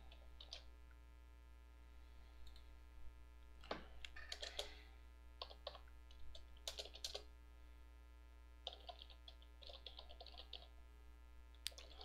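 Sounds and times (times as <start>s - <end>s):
keyboard typing: 0.0s - 0.7s, 4.0s - 4.8s, 5.4s - 7.3s, 8.6s - 10.7s, 11.7s - 12.0s
steady low hum: 0.0s - 12.0s.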